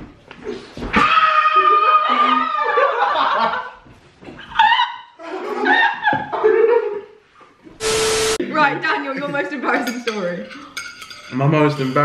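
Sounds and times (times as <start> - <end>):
woman laughing hard: 4.5 - 7.0.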